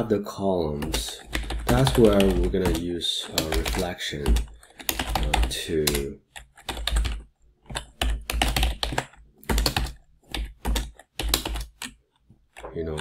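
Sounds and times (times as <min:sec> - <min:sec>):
computer keyboard typing: 0:00.7 - 0:13.0.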